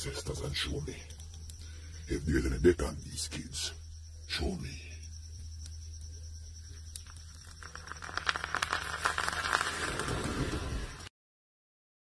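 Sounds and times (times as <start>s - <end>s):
powder burning crackling and fizzing: 6.8s - 11.1s.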